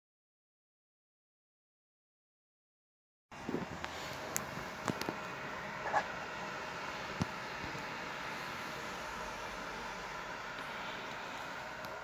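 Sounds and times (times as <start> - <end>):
cooling fan whirring: 3.3 - 12.0.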